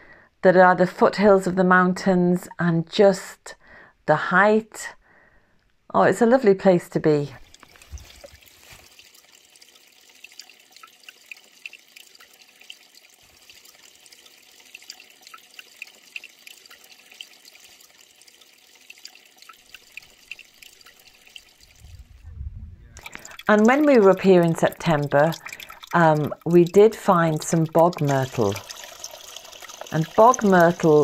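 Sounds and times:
water drips and plinks: 0:07.4 - 0:22.0, 0:23.0 - 0:31.0
stream trickling over rocks: 0:07.4 - 0:22.2, 0:23.0 - 0:31.0.

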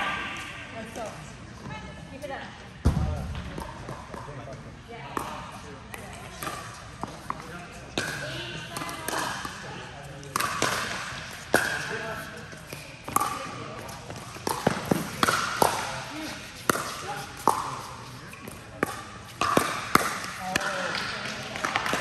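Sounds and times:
ball bouncing on court: 0:02.8 - 0:04.4, 0:05.1 - 0:09.6, 0:10.2 - 0:16.0, 0:18.4 - 0:22.0
paddles hitting plastic ball: 0:10.3 - 0:12.0, 0:13.1 - 0:15.9, 0:18.5 - 0:22.0.

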